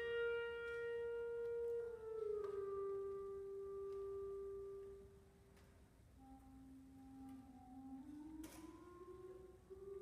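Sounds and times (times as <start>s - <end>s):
woodwinds holding a note: 0.0s - 5.2s.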